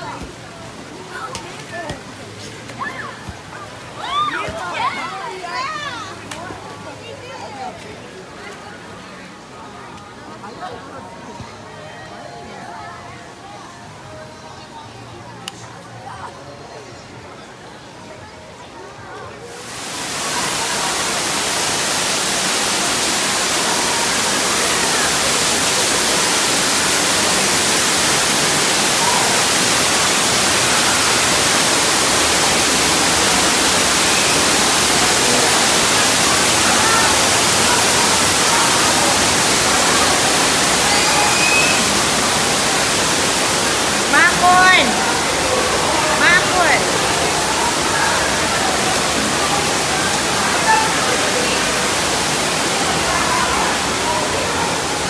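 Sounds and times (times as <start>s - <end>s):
waterfall rushing: 19.5s - 55.0s
voices calling out: 19.6s - 55.0s.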